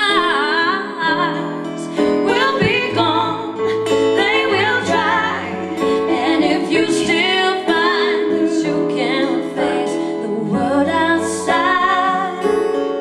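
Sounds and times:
acoustic guitar: 0:00.0 - 0:13.0
keyboard: 0:00.0 - 0:13.0
woman singing: 0:00.0 - 0:13.0.

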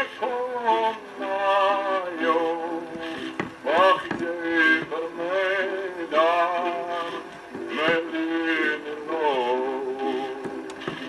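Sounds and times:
man singing with vibrato: 0:00.0 - 0:11.0.

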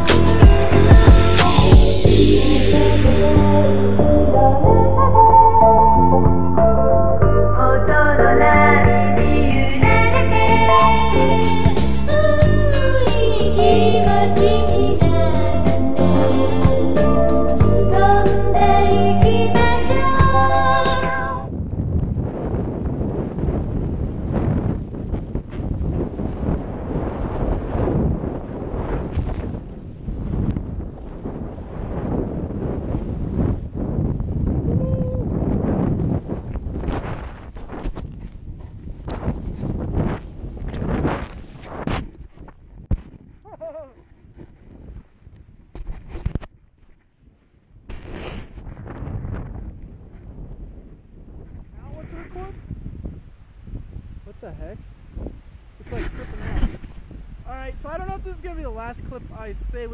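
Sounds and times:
wind on camera microphone: 0:07.7 - 0:59.9
snowboard sliding through snow: 0:22.0 - 0:34.6, 0:35.3 - 0:43.4, 0:47.9 - 0:57.4.

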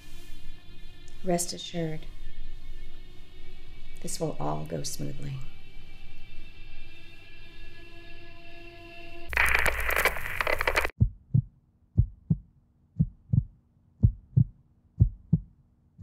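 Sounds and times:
heartbeat thumps: 0:11.0 - 0:15.6.

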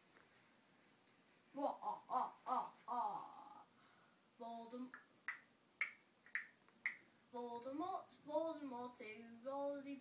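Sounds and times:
hummed voice: 0:01.6 - 0:03.7.

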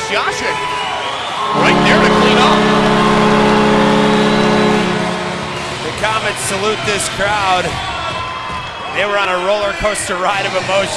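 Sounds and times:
arena horn chord: 0:01.5 - 0:07.6.

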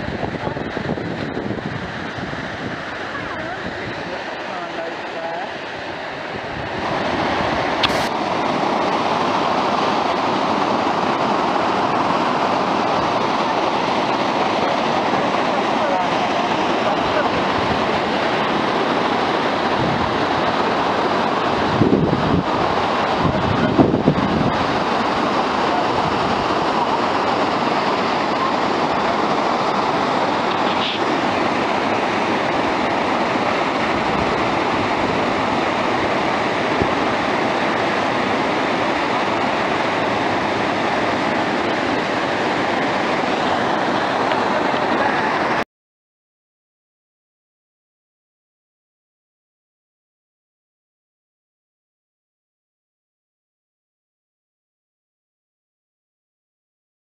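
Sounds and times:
waterfall rushing: 0:00.4 - 0:45.6.

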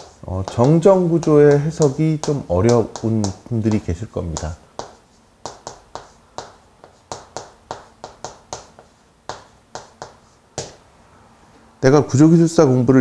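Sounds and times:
chalk tapping on board: 0:00.0 - 0:10.8.

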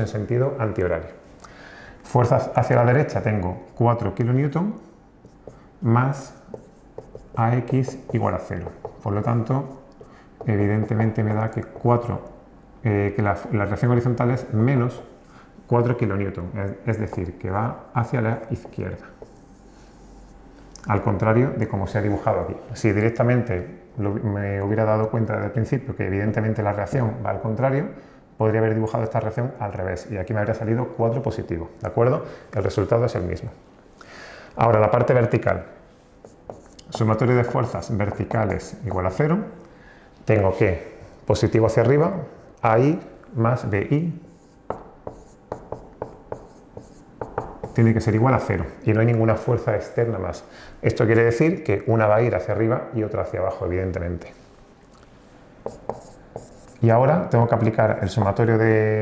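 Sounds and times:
man talking: 0:00.0 - 0:01.2, 0:02.0 - 0:04.8, 0:05.8 - 0:19.2, 0:20.8 - 0:33.6, 0:34.6 - 0:35.8, 0:36.7 - 0:39.6, 0:40.2 - 0:44.3, 0:47.6 - 0:54.4, 0:56.0 - 0:59.0
marker scratching on whiteboard: 0:02.6 - 0:12.2, 0:13.4 - 0:15.8, 0:16.7 - 0:20.4, 0:36.2 - 0:38.8, 0:44.2 - 0:48.8, 0:55.6 - 0:57.0.

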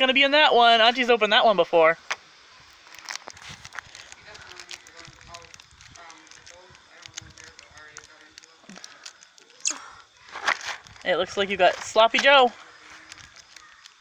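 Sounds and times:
plastic wrapper crinkling and tearing: 0:02.7 - 0:11.1, 0:12.7 - 0:14.0
soft voices: 0:04.0 - 0:13.9.

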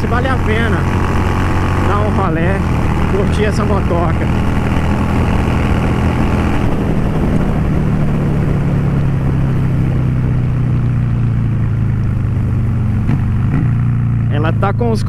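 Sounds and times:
wind noise: 0:00.0 - 0:13.8
motorcycle engine running: 0:00.0 - 0:15.0
road noise: 0:00.0 - 0:15.0.

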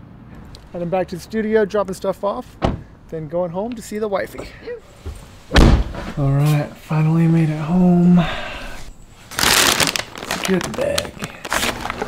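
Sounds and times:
paper bag rustling: 0:09.1 - 0:12.0.

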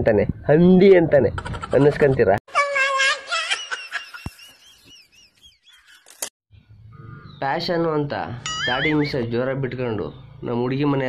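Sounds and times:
faint bird chirping: 0:04.5 - 0:11.0.

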